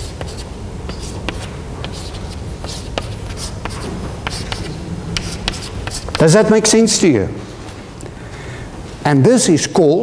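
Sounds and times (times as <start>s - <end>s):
chalk scratching on chalkboard: 0.0s - 6.4s
chalk tapping: 0.0s - 6.4s.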